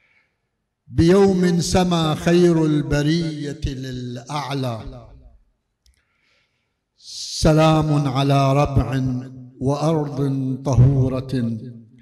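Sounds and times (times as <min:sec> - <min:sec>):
man reciting with room echo: 0:00.0 - 0:12.0
soft intake of breath: 0:06.0 - 0:06.9.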